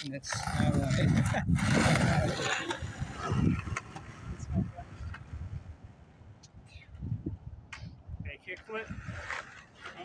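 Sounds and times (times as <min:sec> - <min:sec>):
wind buffeting microphone: 0:00.1 - 0:09.4.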